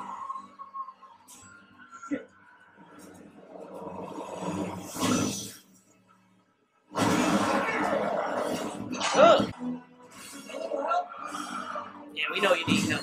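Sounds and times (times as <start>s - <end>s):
creature snarling roar: 7.0s - 9.5s.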